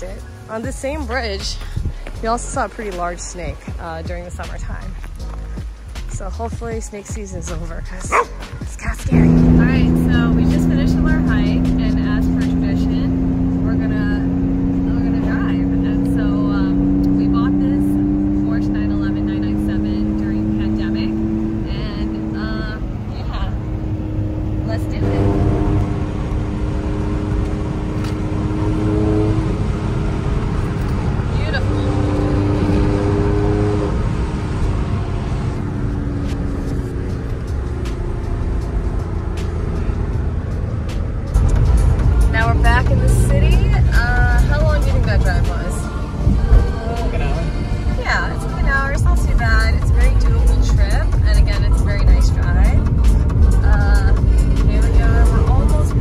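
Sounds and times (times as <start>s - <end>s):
car engine accelerating: 0.0s - 56.0s
road noise: 0.0s - 56.0s.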